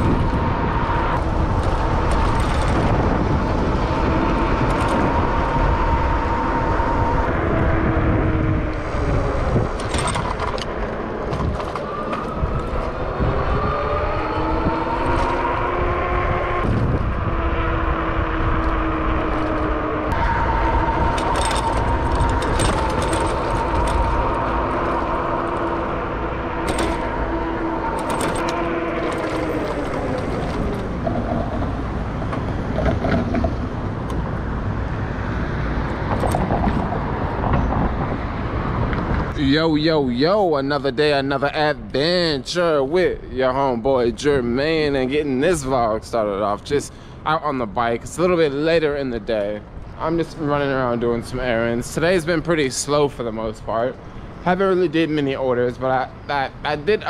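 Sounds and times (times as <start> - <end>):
electric bike motor whining: 0.0 - 37.7
wind noise on microphone: 0.0 - 57.0.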